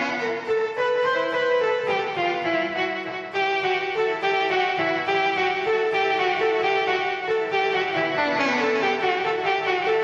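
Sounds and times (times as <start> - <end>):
violin-like electric guitar melody: 0.0 - 10.0.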